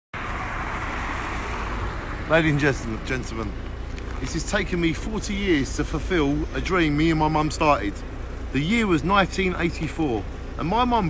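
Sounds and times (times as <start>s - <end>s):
road traffic rushing: 0.1s - 11.0s.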